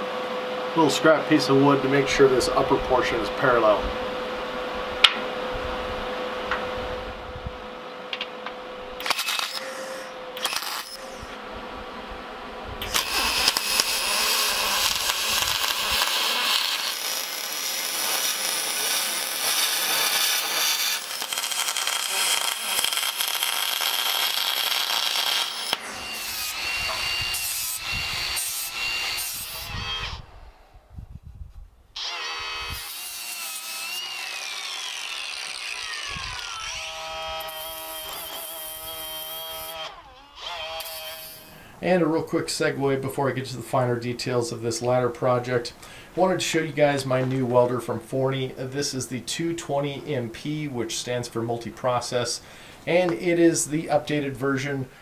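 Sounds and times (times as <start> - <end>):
angle grinder grinding metal: 9.0 - 11.4, 12.8 - 30.2, 32.0 - 41.6
welding crackling hiss: 9.0 - 11.4, 12.8 - 26.7, 37.4 - 39.8, 40.8 - 41.5.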